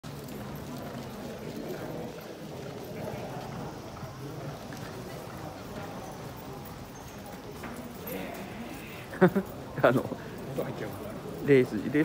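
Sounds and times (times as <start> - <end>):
indistinct voices: 0.2 - 11.3.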